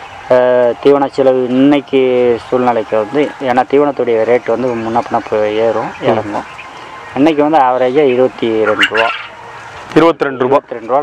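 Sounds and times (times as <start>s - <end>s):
quail chirping: 0.0s - 11.0s
man talking: 0.3s - 9.3s, 9.9s - 11.0s.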